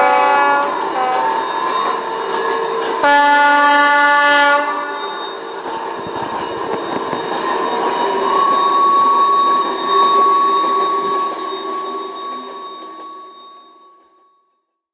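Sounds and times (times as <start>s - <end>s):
train rolling past: 0.0s - 14.4s
high ringing of wheels on rails: 0.0s - 14.5s.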